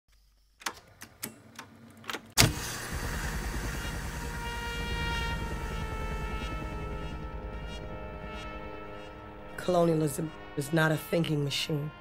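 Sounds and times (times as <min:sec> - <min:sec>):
droning hum with low pulsing: 0:02.4 - 0:12.0.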